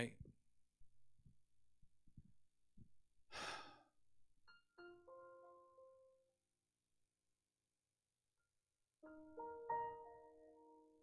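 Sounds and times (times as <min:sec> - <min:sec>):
breath out into microphone: 0:03.3 - 0:03.9.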